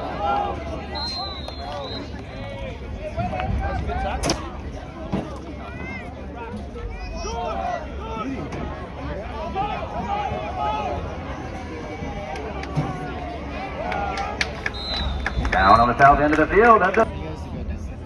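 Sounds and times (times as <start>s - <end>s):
people talking and calling out: 0.0s - 18.0s
referee's whistle blast: 14.7s - 16.2s.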